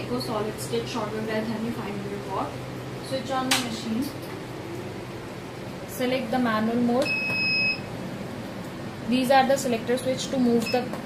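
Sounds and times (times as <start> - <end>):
high-pitched keypad beep: 7.0 - 7.8.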